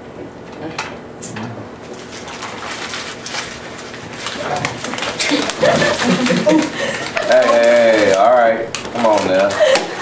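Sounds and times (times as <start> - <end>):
students laughing and murmuring: 4.6 - 8.3, 9.0 - 10.0.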